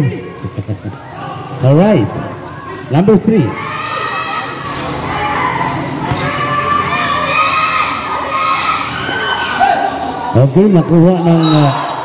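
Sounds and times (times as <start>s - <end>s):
crowd shouting and cheering: 0.0s - 12.0s.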